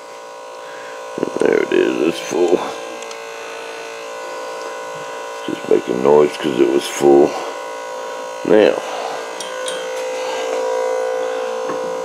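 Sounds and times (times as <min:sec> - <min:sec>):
electric fuel pump buzzing: 0:00.0 - 0:12.0.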